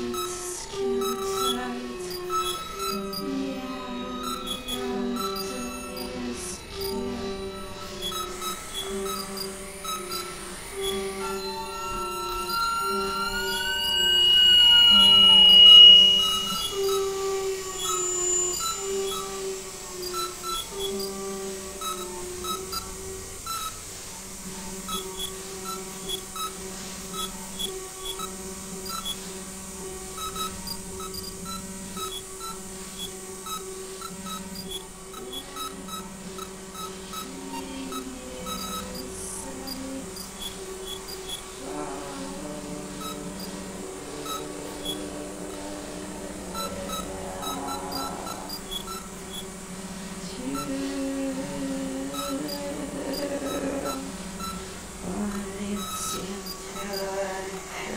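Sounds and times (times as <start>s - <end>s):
low synth drone: 0.0s - 24.6s, 41.5s - 56.4s
wavering gliding high tones: 0.0s - 57.9s
short synth blips: 2.2s - 22.9s.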